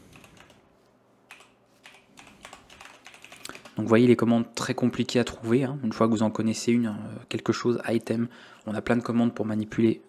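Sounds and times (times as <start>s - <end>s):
faint keyboard typing: 0.0s - 3.9s.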